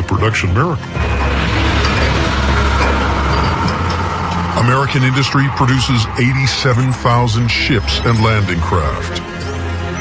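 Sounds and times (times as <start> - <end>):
loud low mechanical rumble: 0.9 - 7.7.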